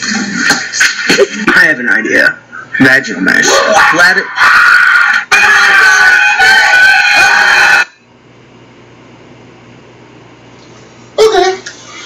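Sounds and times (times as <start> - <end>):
person screaming: 3.5 - 7.9.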